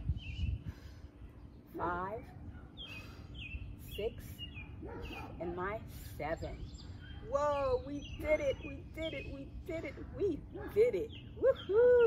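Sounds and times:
songbird chirping: 0.0 - 12.0
woman speaking: 1.7 - 2.3, 3.8 - 4.4, 5.4 - 6.7, 7.3 - 12.0.

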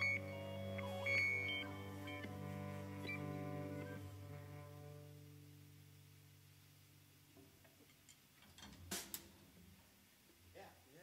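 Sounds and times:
guitar cello and drum music: 0.0 - 5.2.

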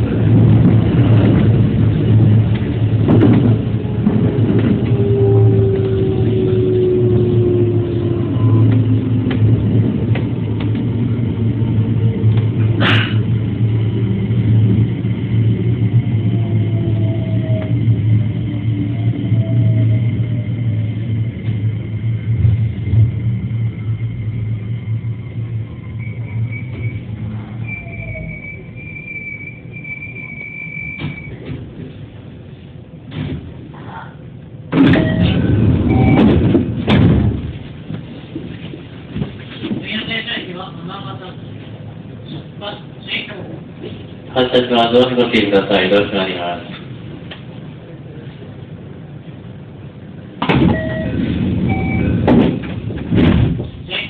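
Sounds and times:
train low hum: 0.0 - 54.0
short electronic beeps: 26.0 - 31.4, 35.0 - 36.3, 50.7 - 52.2.

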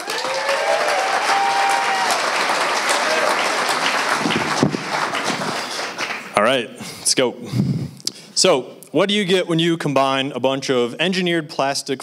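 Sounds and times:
audience applauding: 0.0 - 6.5.

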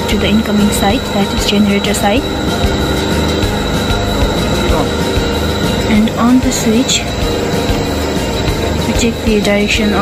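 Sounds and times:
high whine: 0.0 - 10.0
machine hum: 0.0 - 10.0.

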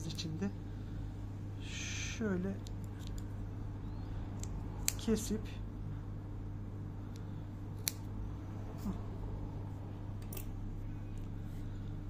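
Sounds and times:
steady low hum: 0.0 - 12.0
thread snips cutting yarn: 4.4 - 5.2, 7.2 - 8.1.

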